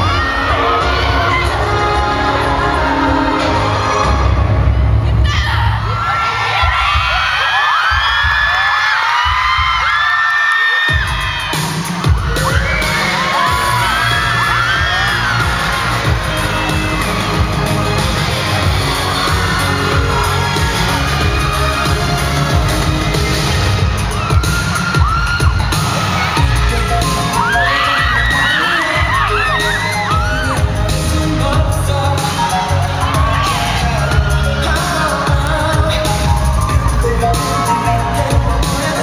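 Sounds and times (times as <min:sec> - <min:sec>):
girls screaming and cheering: 0:00.0 - 0:39.0
dance music with heavy bass: 0:10.9 - 0:39.0.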